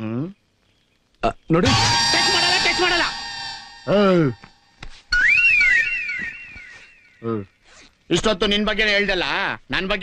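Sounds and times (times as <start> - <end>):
comic whistled tones: 1.6 - 6.8.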